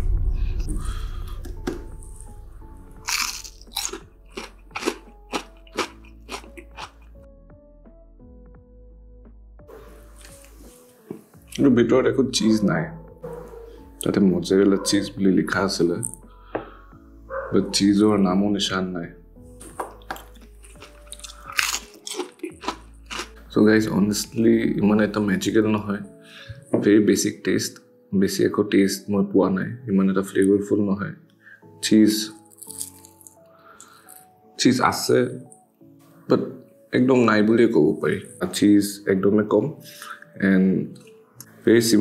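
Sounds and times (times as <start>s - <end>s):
bite into crispy food: 3.0s - 7.2s, 19.6s - 23.4s, 32.5s - 34.2s
crunchy chewing: 3.0s - 7.2s, 19.6s - 23.4s, 32.4s - 34.3s.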